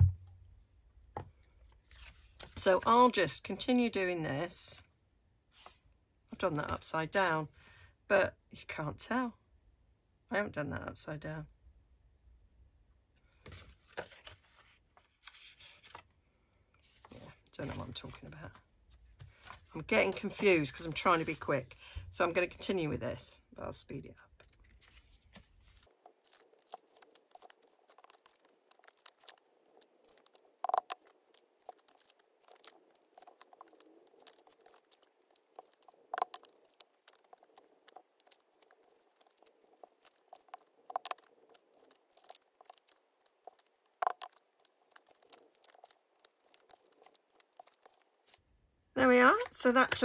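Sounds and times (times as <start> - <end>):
paper and card rustling: 13.5 - 16.1, 24.4 - 48.4.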